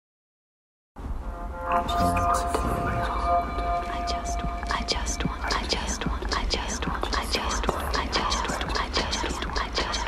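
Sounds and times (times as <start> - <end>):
low steady hum: 1.0 - 10.0
layered whispering voices: 1.7 - 10.0.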